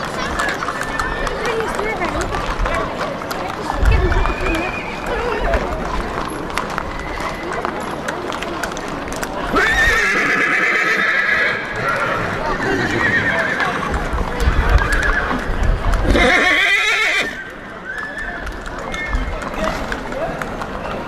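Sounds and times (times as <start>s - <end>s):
hooves clip-clopping on hard ground: 0.0s - 21.0s
horses whinnying: 9.5s - 14.0s, 14.6s - 19.6s.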